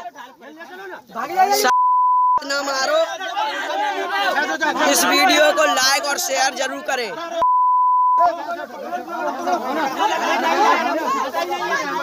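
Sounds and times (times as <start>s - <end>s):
crowd of men talking and shouting: 0.0s - 1.8s, 2.4s - 7.5s, 8.1s - 12.0s
bleep tone: 1.7s - 2.5s, 7.4s - 8.2s.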